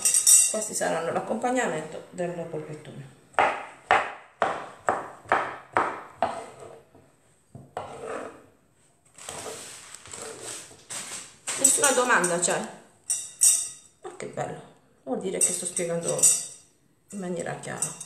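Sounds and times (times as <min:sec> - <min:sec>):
knife chopping on wooden board: 0:03.4 - 0:07.0, 0:07.6 - 0:08.3.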